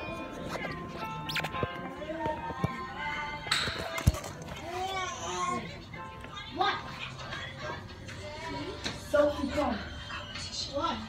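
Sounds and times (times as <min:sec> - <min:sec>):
children talking and calling: 0:00.0 - 0:11.0
music: 0:00.0 - 0:11.0.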